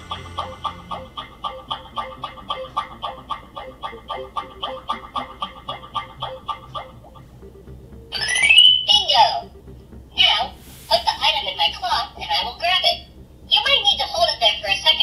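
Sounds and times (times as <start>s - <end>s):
electronic sound rising in pitch: 0.0s - 2.8s, 6.3s - 10.2s.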